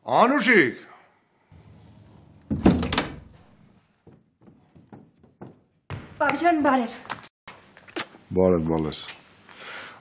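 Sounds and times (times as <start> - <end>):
door thudding shut: 2.3 - 3.5.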